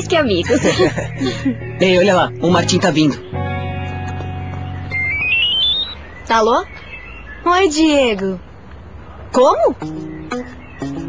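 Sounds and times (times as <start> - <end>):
background music sustained chord: 0.0 - 5.1
phone ringtone rising beeps: 4.9 - 6.0.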